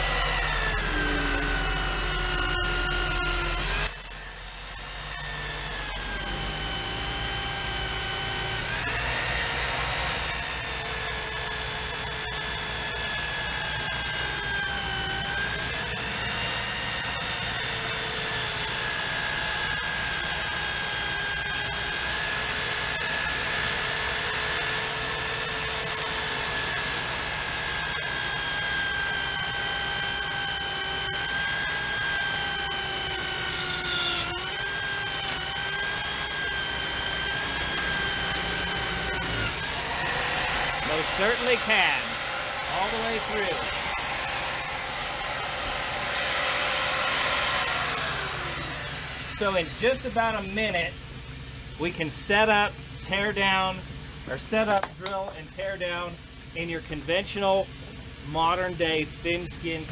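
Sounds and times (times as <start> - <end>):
electric drill boring into steel: 0.0 - 51.7.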